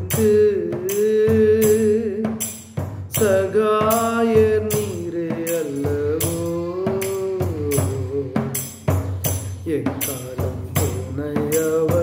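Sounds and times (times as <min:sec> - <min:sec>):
tambourine beating: 0:00.0 - 0:12.0.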